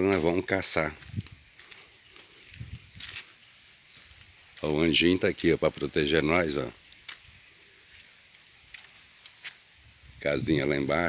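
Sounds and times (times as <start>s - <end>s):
soft high hiss: 0.0s - 11.0s.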